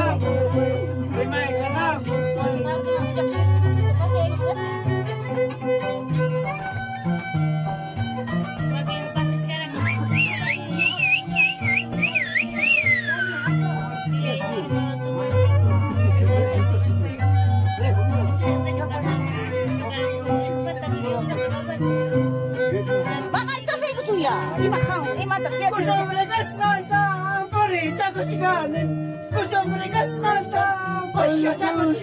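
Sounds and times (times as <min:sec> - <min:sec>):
harp plucked bass notes: 0:00.0 - 0:32.0
violin playing: 0:00.0 - 0:32.0
high wavering melody with vibrato: 0:09.7 - 0:17.4.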